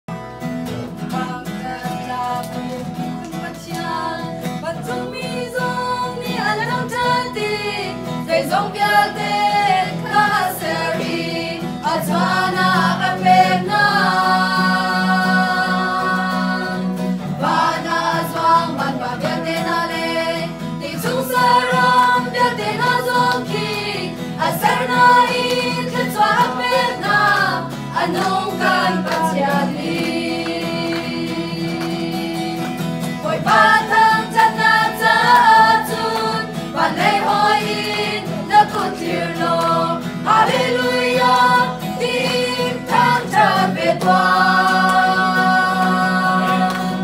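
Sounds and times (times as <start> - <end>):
acoustic guitar: 0.1 - 47.0
group singing a worship song: 1.0 - 47.0.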